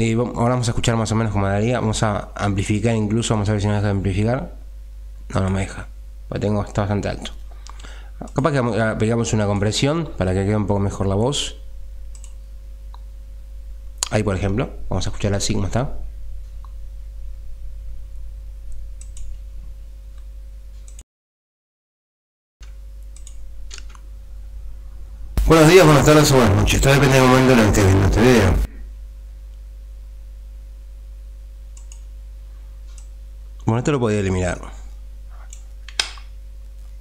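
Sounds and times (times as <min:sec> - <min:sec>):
microphone hum and hiss: 0:00.3 - 0:20.8, 0:23.2 - 0:37.0
faint clicks: 0:12.1 - 0:13.1, 0:22.6 - 0:24.0, 0:31.8 - 0:32.1
sharp click: 0:31.8 - 0:32.1.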